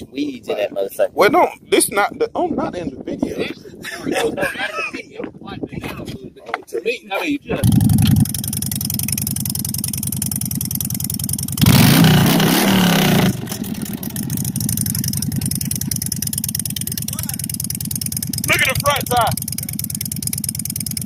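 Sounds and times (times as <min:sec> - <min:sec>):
motorcycle idling and revving: 0:07.6 - 0:21.0.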